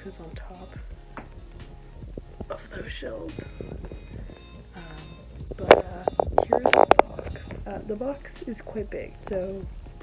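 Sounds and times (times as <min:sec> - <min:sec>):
phone rubbing against microphone: 0:05.4 - 0:07.8.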